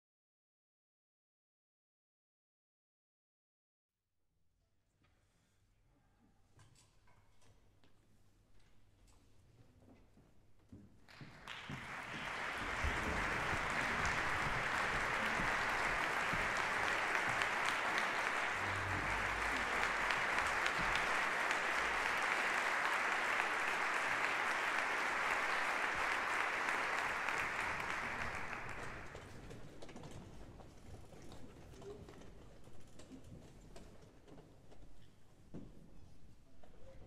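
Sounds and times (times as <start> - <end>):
audience applauding: 11.1 - 29.4.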